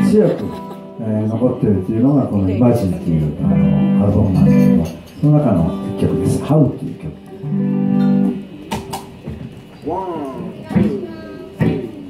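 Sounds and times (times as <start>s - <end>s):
electric guitar chord ringing: 0.0s - 9.2s.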